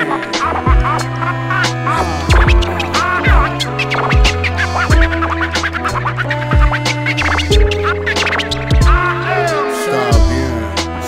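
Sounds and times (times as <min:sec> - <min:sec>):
dj scratching: 0:00.0 - 0:10.9
held bass line: 0:00.0 - 0:11.0
hip hop beat with kick drums: 0:00.0 - 0:11.0.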